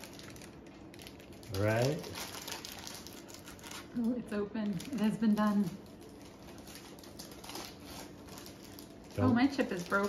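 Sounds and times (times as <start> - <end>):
foil pouches crinkling: 0.0 - 10.0.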